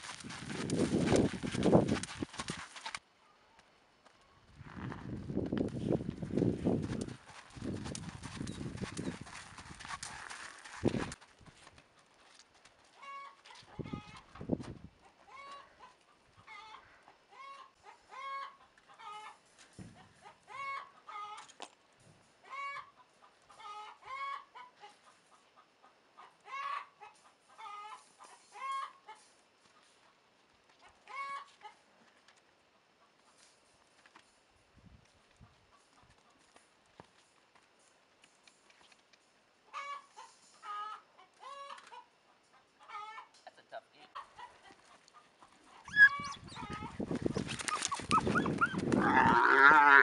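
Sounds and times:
horse hooves on dirt: 0.0 - 3.1, 4.0 - 14.9, 44.6 - 50.0
chickens clucking: 13.0 - 19.4, 39.7 - 43.4, 44.2 - 49.5.

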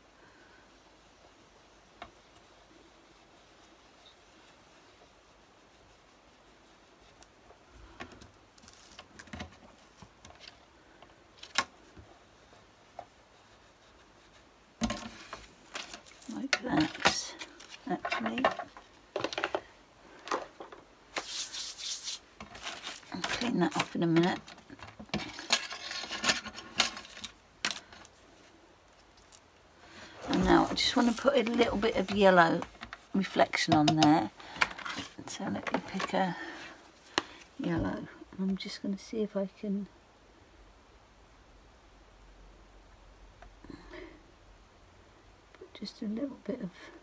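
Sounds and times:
plastic stencil peeling and rustling: 1.2 - 10.7, 11.4 - 19.6, 20.6 - 28.2, 28.9 - 36.6
foam tool rubbing on stencil: 21.2 - 23.2.

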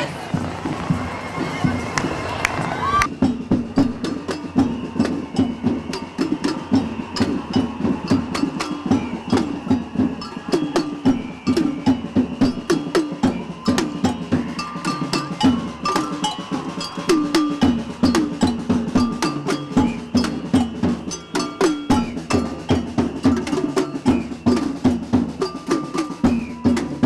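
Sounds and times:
snare drums playing fast rhythm: 3.1 - 27.0.

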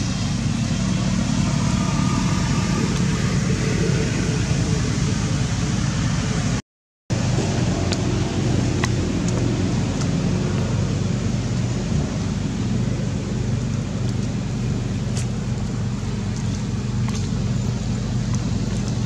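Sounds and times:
low rumble and hiss: 0.0 - 19.0.

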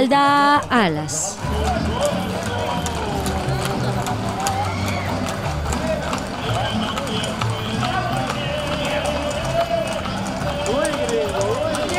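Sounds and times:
voices: 0.0 - 11.9
horse hooves on asphalt: 1.4 - 11.9
music: 1.4 - 11.9.

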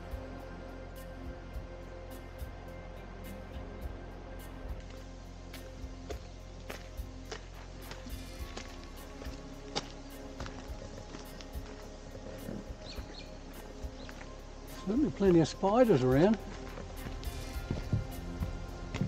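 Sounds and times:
soft sustained background music: 0.0 - 19.0.

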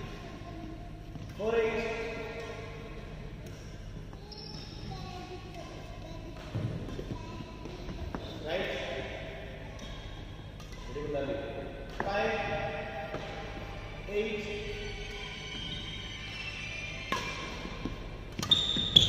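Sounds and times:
racket hitting shuttlecock: 10.6 - 13.6, 17.1 - 19.0.

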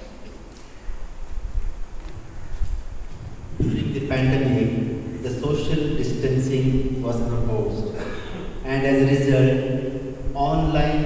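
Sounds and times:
man speaking slowly: 3.6 - 11.0.

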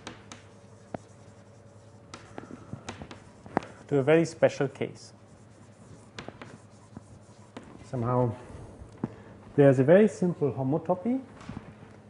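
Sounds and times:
chalk writing on blackboard: 0.0 - 4.0, 4.8 - 8.2.

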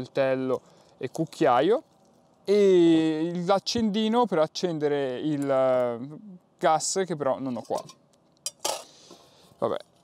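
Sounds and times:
metal cutlery and pot clinking: 7.6 - 8.9.

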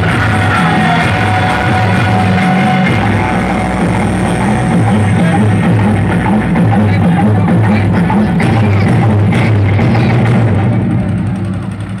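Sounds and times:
loud bass-heavy dance music: 0.0 - 12.0.

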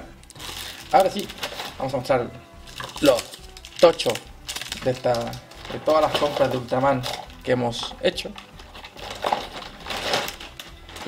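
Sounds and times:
packaging crinkling and rustling: 0.3 - 11.0.

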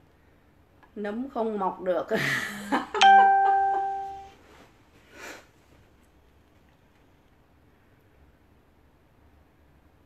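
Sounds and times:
bright electronic chime: 3.0 - 4.3.

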